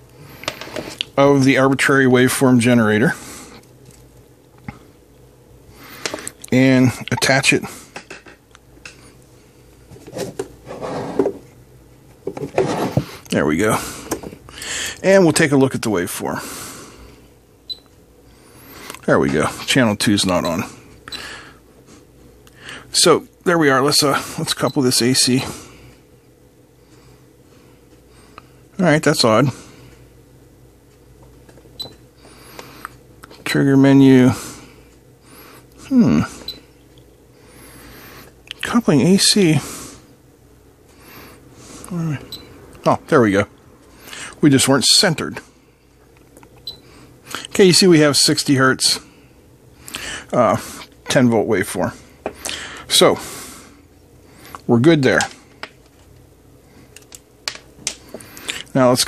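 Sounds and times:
faint steady hum: 0:00.0 - 0:59.0.

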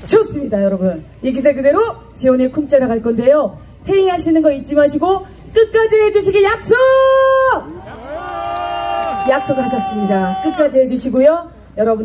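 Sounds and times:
woman's amplified long calls: 0:05.7 - 0:11.4.

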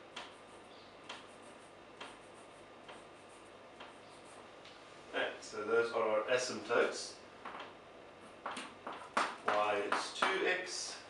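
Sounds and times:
chalk tapping on chalkboard: 0:01.0 - 0:04.2, 0:08.3 - 0:10.4.

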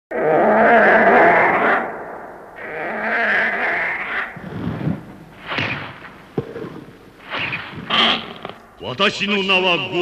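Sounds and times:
monster roar: 0:00.1 - 0:02.0, 0:02.6 - 0:04.4.

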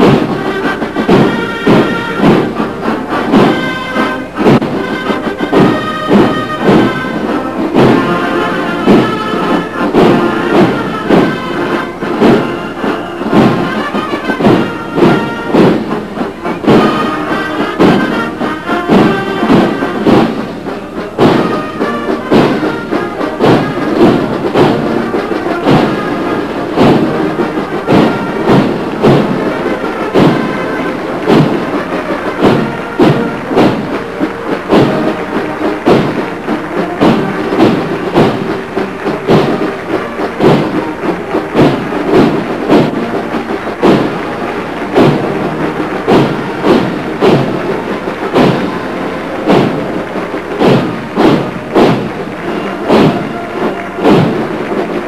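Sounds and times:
marching drum beat: 0:00.0 - 0:55.0
military marching band: 0:00.0 - 0:55.0.

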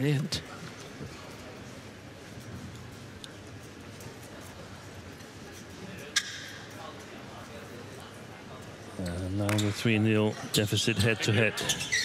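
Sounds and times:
crowd murmur in large hall: 0:00.0 - 0:12.0.

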